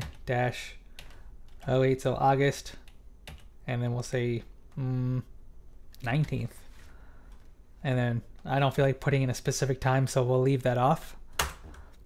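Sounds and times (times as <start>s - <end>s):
man speaking: 0.2s - 0.8s, 1.6s - 2.8s, 3.6s - 5.3s, 6.0s - 6.7s, 7.8s - 11.2s.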